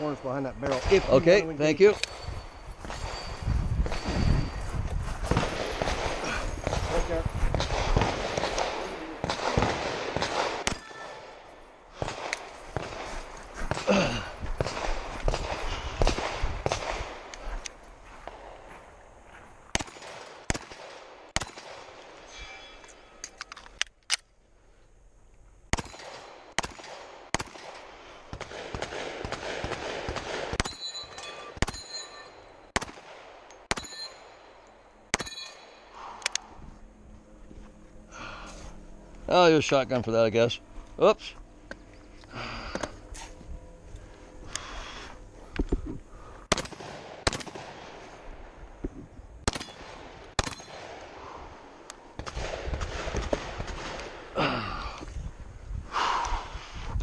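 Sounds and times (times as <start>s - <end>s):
movement noise: 0.9s - 20.4s, 35.5s - 50.2s
pistol shots on steel targets: 5.3s - 13.9s, 25.7s - 35.9s, 46.5s - 48.0s, 49.4s - 51.0s.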